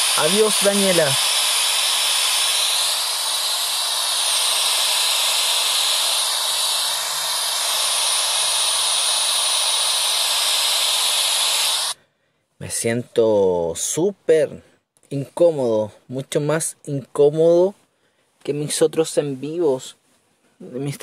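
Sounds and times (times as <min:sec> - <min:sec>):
white-noise static hiss: 0:00.0 - 0:12.0.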